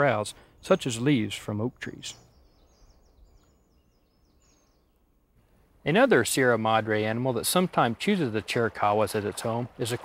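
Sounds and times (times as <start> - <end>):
faint high-pitched bird chirps: 1.7 - 5.1.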